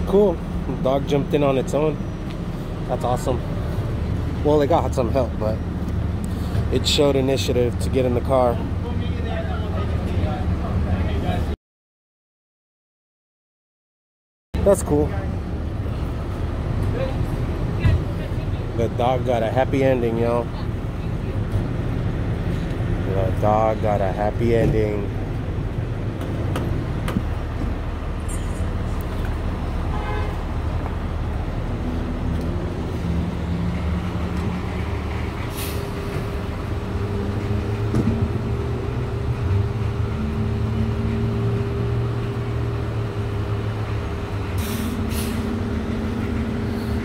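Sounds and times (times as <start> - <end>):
diesel engine idling: 0.0 - 11.5, 14.6 - 47.0.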